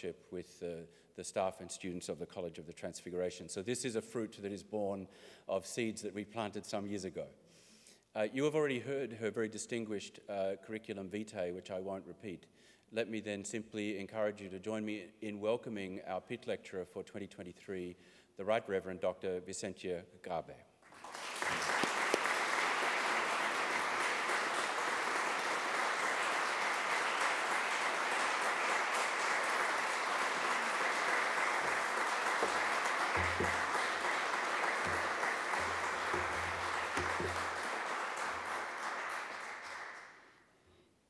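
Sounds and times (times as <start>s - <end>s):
audience applauding: 20.8s - 40.2s.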